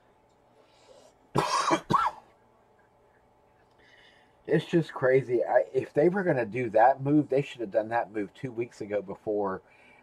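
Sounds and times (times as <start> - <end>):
man coughing: 1.3 - 2.3.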